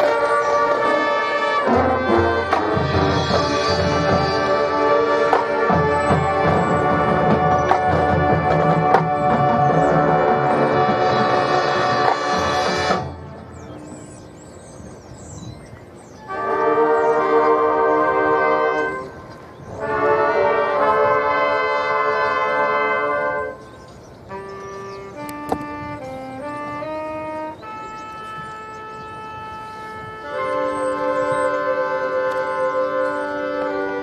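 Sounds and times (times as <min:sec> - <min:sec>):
brass section sustained chord: 0:00.0 - 0:14.2, 0:16.2 - 0:34.0.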